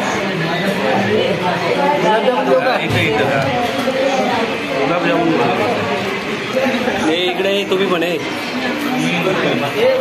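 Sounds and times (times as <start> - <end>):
people chatting: 0.0 - 10.0.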